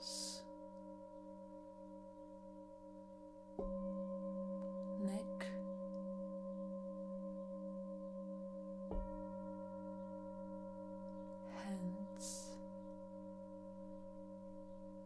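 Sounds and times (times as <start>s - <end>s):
singing bowl struck: 0.0s - 11.5s
singing bowls ringing: 0.0s - 15.0s.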